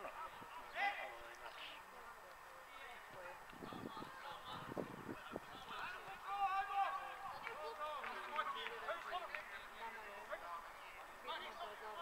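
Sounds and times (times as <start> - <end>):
distant players shouting: 5.5 - 8.4.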